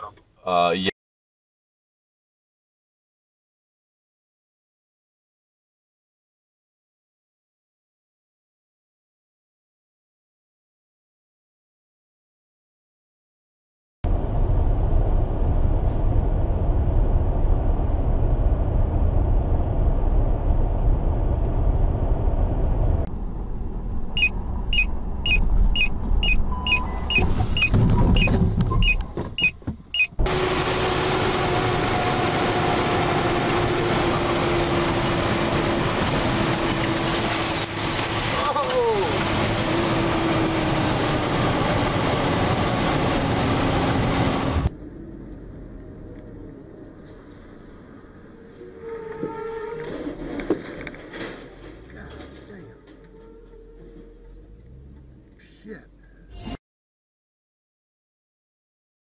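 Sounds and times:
loud low rumble: 0:14.0 - 0:29.2
car interior and road noise: 0:14.1 - 0:49.1, 0:49.9 - 0:56.3
short high beeps: 0:24.2 - 0:30.2.

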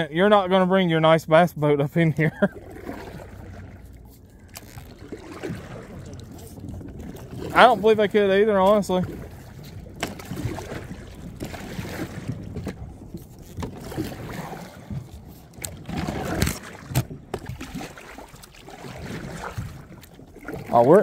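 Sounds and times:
paddle splashing: 0:01.9 - 0:21.0
debris scraping kayak hull: 0:02.0 - 0:21.0.

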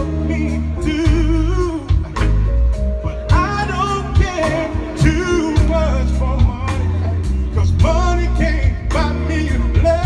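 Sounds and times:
bass and drums: 0:00.0 - 0:10.0.

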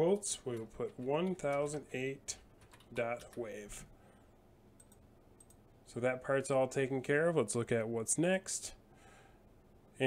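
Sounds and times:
computer mouse clicks: 0:04.8 - 0:05.6.

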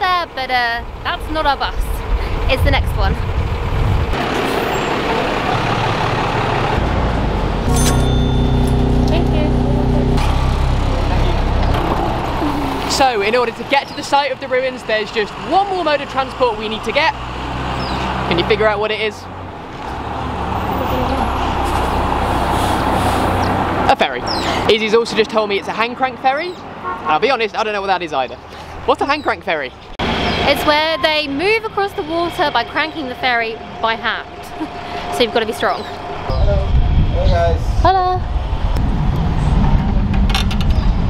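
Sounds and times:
bus engine running: 0:00.0 - 0:25.6, 0:28.5 - 0:41.0.

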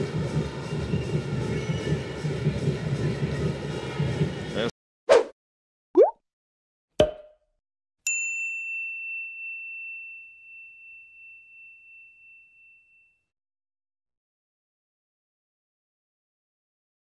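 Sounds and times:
bell-like ding: 0:08.1 - 0:13.2.

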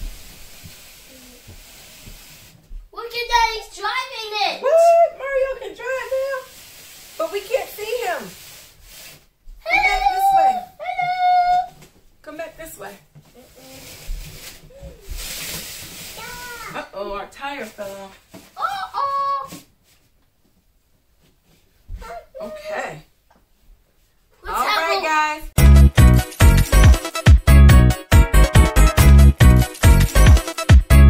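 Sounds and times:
child's high-pitched calls and squeals: 0:09.6 - 0:11.8, 0:13.4 - 0:14.0, 0:16.1 - 0:16.8, 0:18.6 - 0:19.6.

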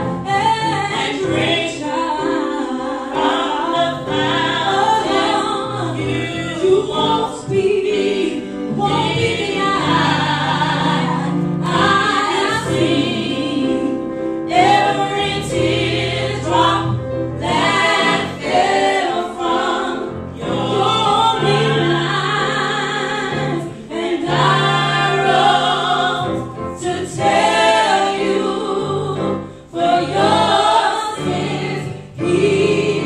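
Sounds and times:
piano accompaniment: 0:00.0 - 0:33.0
women singing in harmony: 0:00.0 - 0:33.0.

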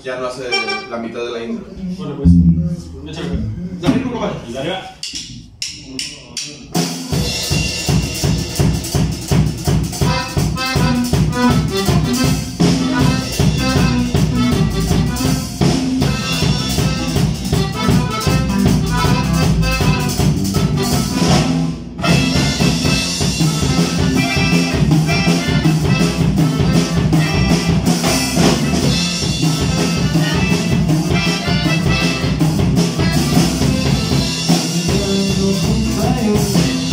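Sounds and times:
bass: 0:00.0 - 0:36.9
drum kit beat: 0:02.2 - 0:04.0, 0:05.0 - 0:36.9
button accordion melody: 0:10.0 - 0:21.4, 0:22.0 - 0:35.1.

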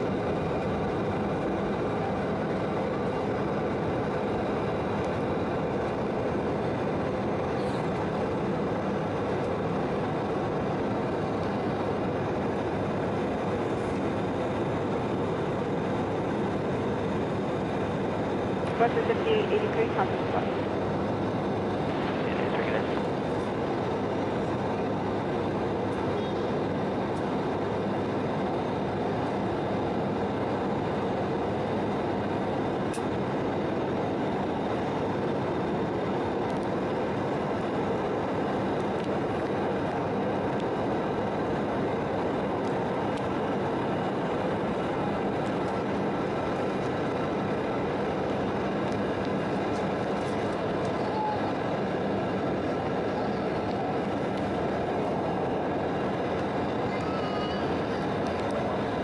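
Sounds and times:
faint steady tones: 0:00.0 - 0:59.0
jet engines humming: 0:00.0 - 0:59.0.

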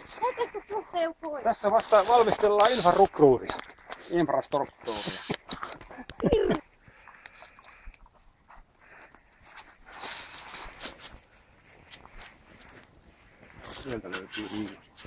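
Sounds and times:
campfire crackling and popping: 0:00.0 - 0:15.0.

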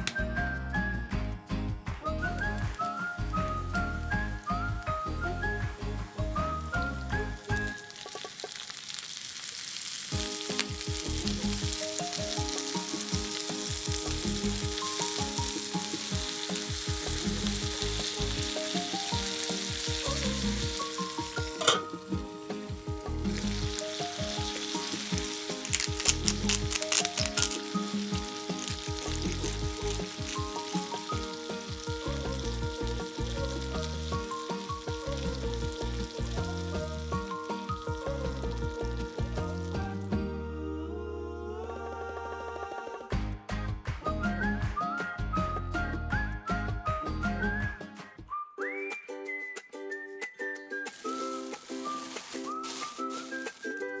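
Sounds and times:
background music: 0:00.0 - 0:08.7, 0:10.1 - 0:54.0
shrimp sizzling in a frying pan: 0:02.2 - 0:40.1, 0:50.9 - 0:54.0
oil spattering crackles: 0:05.7 - 0:39.9, 0:50.8 - 0:54.0.

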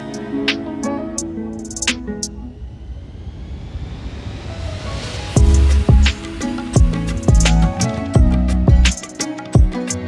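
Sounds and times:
rising noise swell: 0:01.9 - 0:08.1.

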